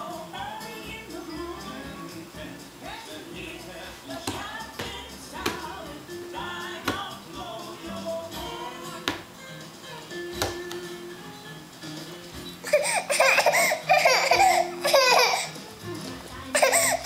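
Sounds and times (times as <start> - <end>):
music with singing: 0.0 - 17.0
hands slapping leather ottoman: 4.2 - 5.7, 6.8 - 7.1, 9.0 - 9.3, 10.3 - 10.9.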